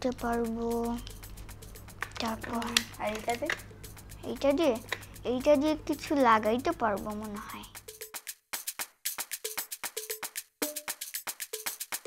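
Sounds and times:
plastic toy tools clicking: 2.0 - 3.6.

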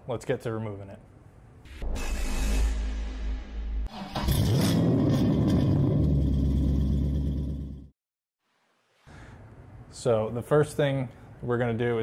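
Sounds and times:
low rumble: 1.7 - 7.9
whoosh: 1.7 - 7.9
engine revving: 3.6 - 7.9.

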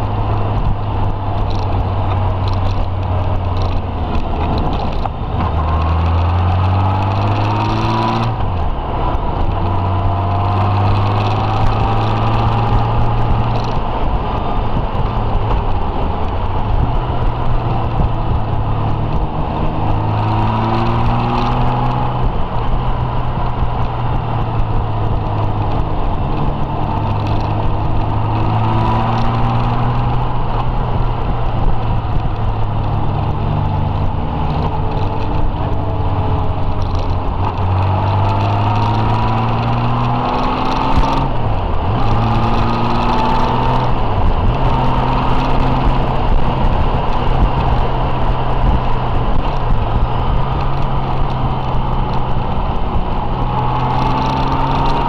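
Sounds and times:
motorcycle engine running: 0.0 - 55.0
wind and road noise: 0.0 - 55.0.

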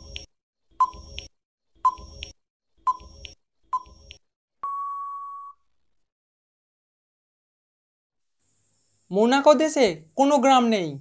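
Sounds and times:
long steady beep: 4.6 - 5.6.

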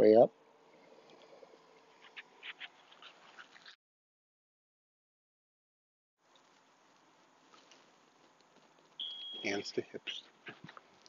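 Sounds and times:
faint high animal chirps: 9.0 - 9.6.

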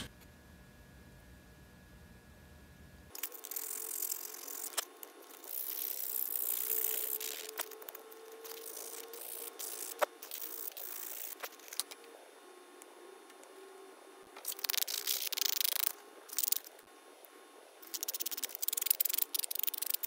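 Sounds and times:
sandpaper rubbing: 3.2 - 7.8
sharp ticks of handling: 17.8 - 20.0.

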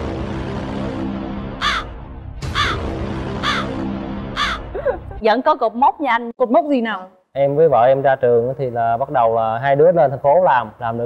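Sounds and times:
crow cawing: 1.6 - 1.9, 2.5 - 2.8, 3.4 - 3.8, 4.4 - 4.7.

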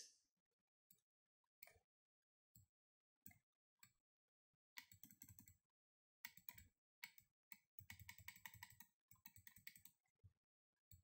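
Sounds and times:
computer mouse clicking: 4.8 - 5.6, 6.2 - 10.0.

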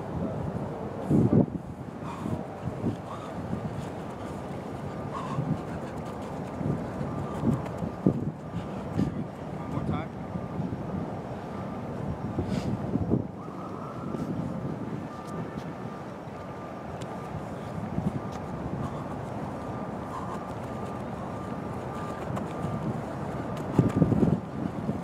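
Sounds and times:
outdoor background noise: 0.0 - 25.0
wind on microphone: 0.0 - 25.0.

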